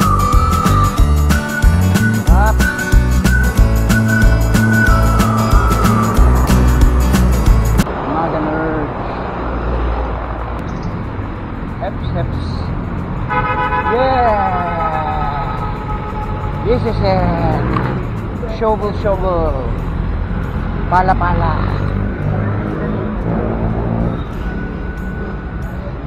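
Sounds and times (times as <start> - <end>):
music with heavy beat: 0.0 - 7.9
vehicle horn: 13.3 - 14.0, 14.8 - 16.9.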